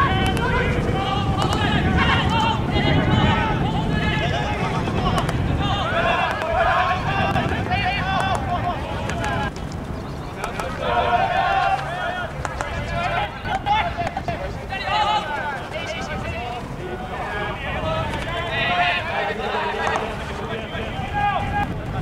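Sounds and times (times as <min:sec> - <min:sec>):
people shouting and calling: 0:00.0 - 0:22.0.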